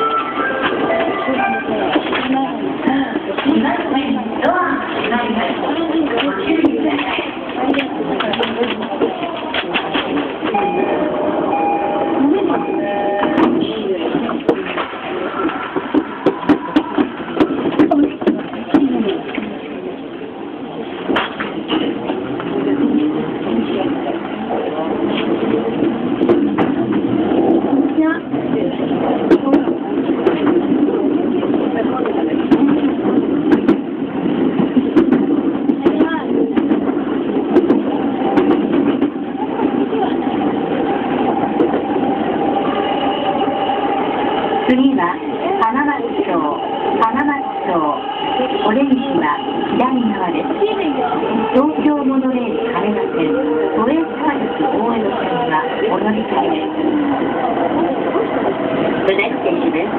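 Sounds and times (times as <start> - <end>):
electric train running: 24.5 - 59.9.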